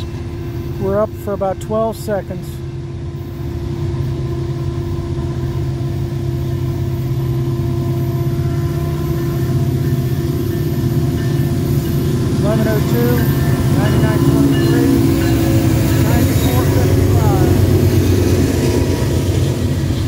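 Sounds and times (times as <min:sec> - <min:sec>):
diesel locomotive engine drone: 0:00.0 - 0:20.0.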